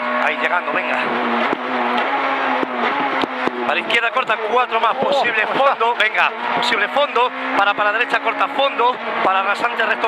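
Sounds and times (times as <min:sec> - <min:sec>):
car engine at high revs: 0:00.0 - 0:10.0
road noise: 0:00.0 - 0:10.0
sharp knocks: 0:01.4 - 0:03.6.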